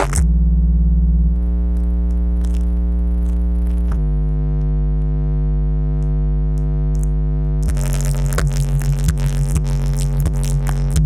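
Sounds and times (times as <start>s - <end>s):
drum-machine beat: 0.0s - 0.3s, 7.6s - 11.0s
synth bass note: 0.0s - 11.0s.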